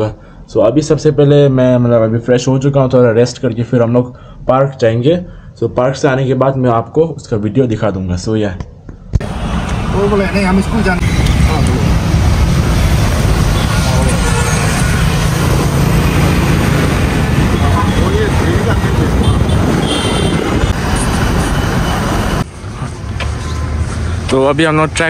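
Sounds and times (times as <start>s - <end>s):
road noise inside moving car: 9.1s - 25.0s.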